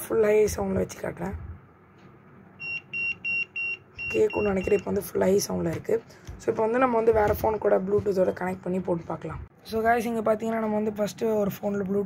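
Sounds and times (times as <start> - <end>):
short high electronic beeps: 2.6 - 4.9.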